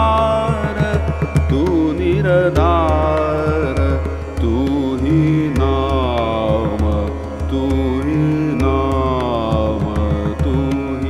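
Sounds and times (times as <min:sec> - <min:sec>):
instrumental accompaniment: 0:00.0 - 0:11.0
man singing ornamented phrases: 0:00.0 - 0:11.0.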